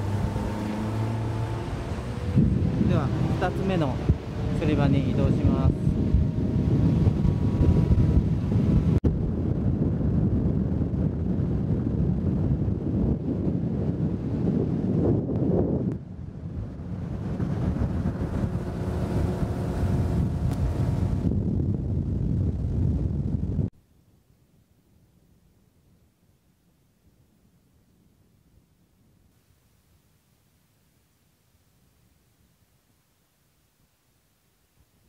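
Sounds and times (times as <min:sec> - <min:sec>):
wind rumble on microphone: 0:00.0 - 0:23.8
boat motor droning: 0:16.8 - 0:21.2.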